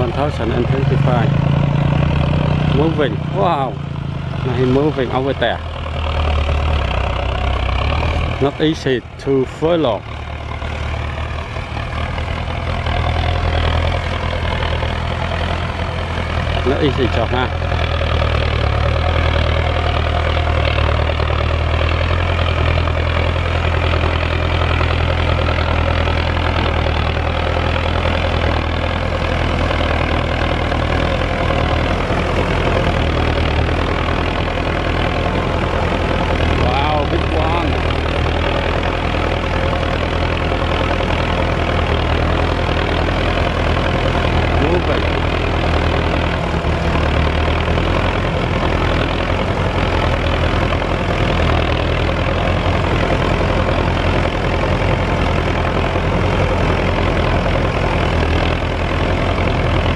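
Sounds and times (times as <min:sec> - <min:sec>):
tractor diesel engine droning: 0:00.0 - 0:59.9.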